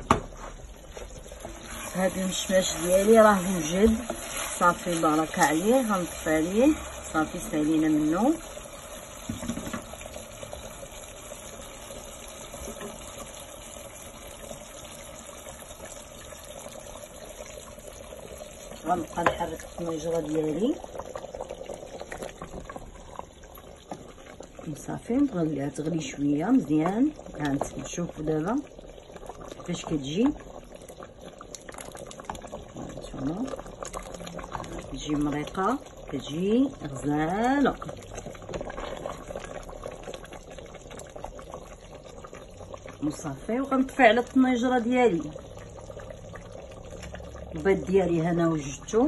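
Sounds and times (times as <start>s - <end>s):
sauce simmering bubbling hiss: 0.0s - 49.0s.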